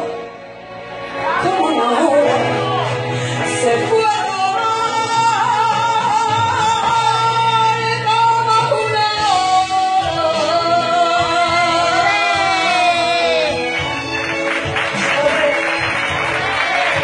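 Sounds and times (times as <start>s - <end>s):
accompanying music: 0.0s - 17.0s
woman singing a ballad: 1.4s - 13.6s.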